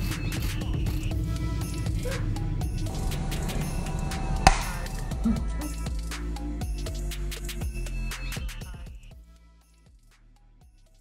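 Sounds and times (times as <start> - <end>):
background music: 0.0 - 11.0
hand slap high five: 4.4 - 5.0.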